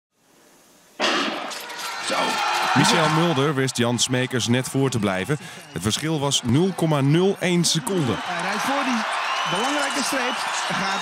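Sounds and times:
arena crowd din: 1.0s - 11.0s.

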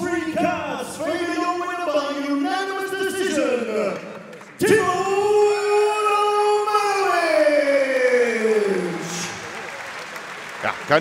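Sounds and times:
man calling over loudspeaker: 0.0s - 9.4s.

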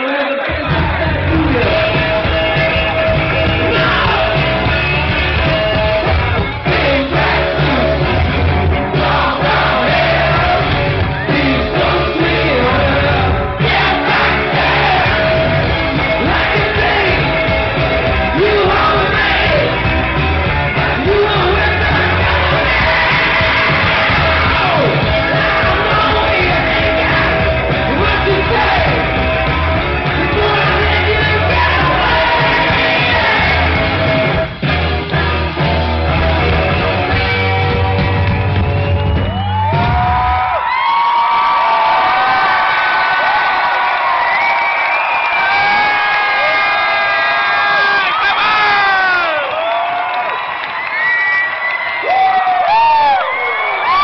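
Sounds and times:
crowd yelling: 0.0s - 54.0s
live rock band playing: 0.5s - 40.5s.

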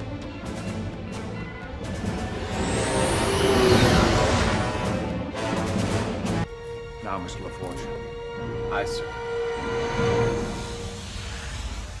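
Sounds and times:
orchestral score: 0.0s - 11.4s
science fiction sound effect: 1.7s - 5.2s, 9.5s - 12.0s.

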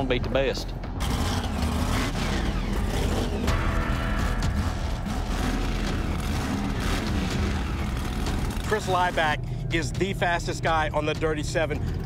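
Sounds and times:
truck engine running: 1.0s - 12.0s.

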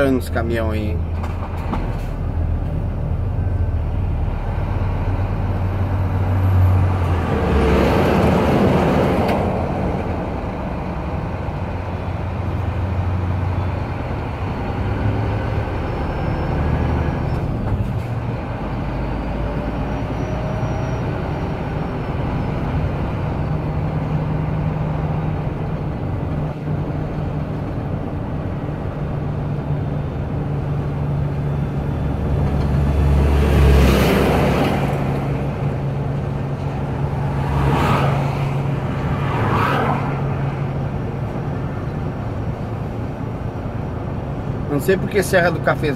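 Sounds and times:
diesel engine drone: 0.0s - 45.9s
trucks passing close by: 0.0s - 45.9s.

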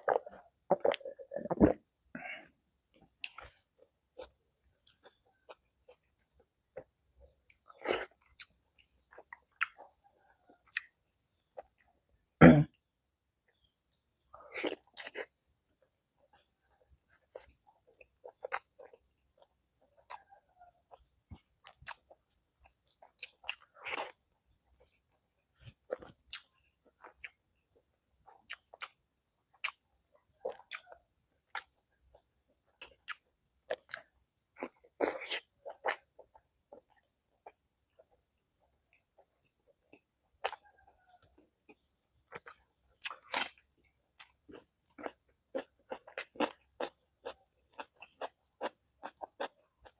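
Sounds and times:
wet chewing: 32.7s - 49.9s.

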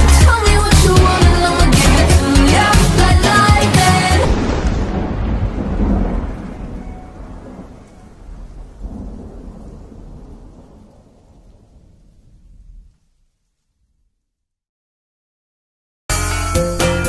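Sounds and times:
rolling thunder rumble: 0.6s - 14.0s.

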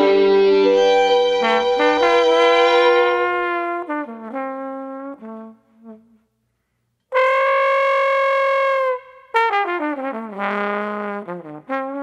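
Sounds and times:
long high trombone note: 0.0s - 4.6s
trombone note: 0.0s - 4.8s.

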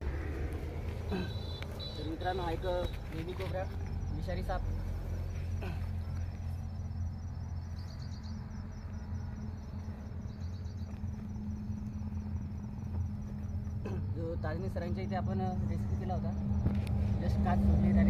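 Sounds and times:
steady low hum: 3.6s - 18.0s.

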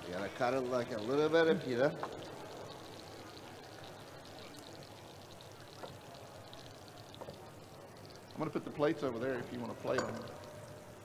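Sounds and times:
frying pan sizzling and crackling: 0.0s - 11.0s.

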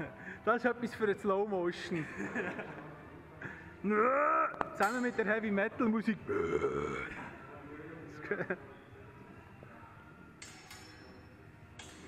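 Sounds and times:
laughter: 2.0s - 3.0s, 8.2s - 8.7s.

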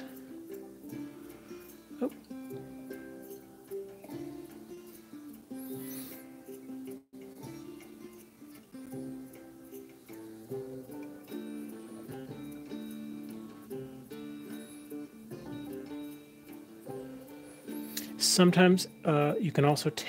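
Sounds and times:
plucked-string background music: 0.0s - 20.0s.

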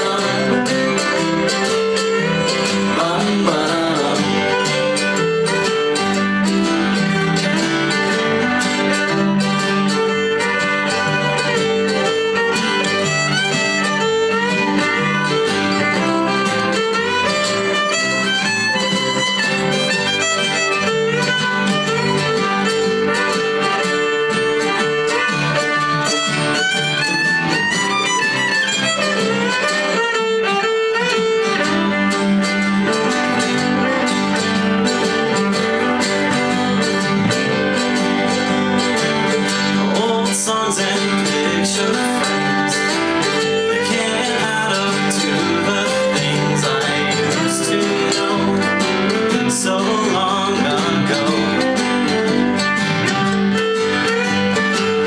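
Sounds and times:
fiddle melody: 0.0s - 55.0s
strummed acoustic guitar: 0.0s - 55.0s.

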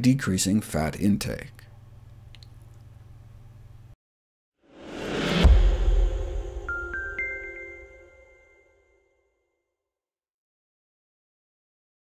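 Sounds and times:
low hum with light hiss: 0.0s - 4.0s
faint clicks: 2.3s - 2.8s.

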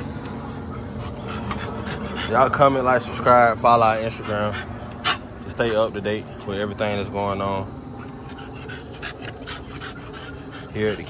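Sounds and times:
dog panting: 0.3s - 11.0s.

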